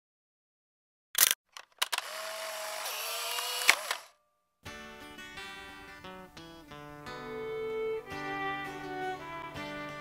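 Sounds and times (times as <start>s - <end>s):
sharp click: 1.2s - 2.1s
small motor whirring: 1.8s - 4.1s.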